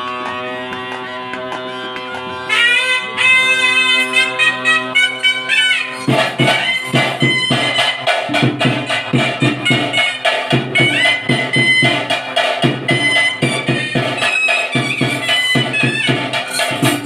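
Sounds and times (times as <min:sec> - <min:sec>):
reedy wind instrument melody: 0:00.0 - 0:17.0
drums playing fast beat: 0:02.5 - 0:17.0.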